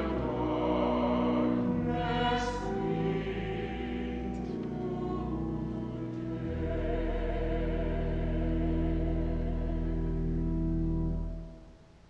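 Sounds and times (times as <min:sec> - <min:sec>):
small choir singing: 0:00.0 - 0:10.0.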